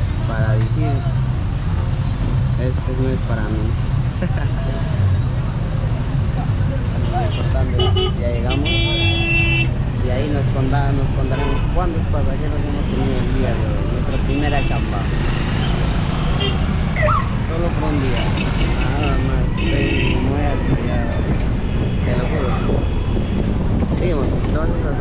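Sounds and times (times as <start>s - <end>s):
engine and traffic rumble: 0.0s - 25.0s
voices: 2.6s - 23.1s
vehicle horn: 7.3s - 9.7s, 18.3s - 20.3s.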